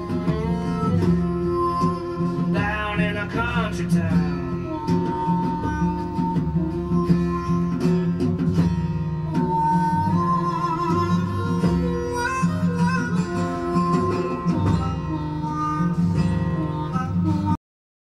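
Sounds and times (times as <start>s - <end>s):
country blues instrumental: 0.0s - 17.6s
plucked guitar: 0.0s - 17.6s
steady bass: 0.0s - 17.6s.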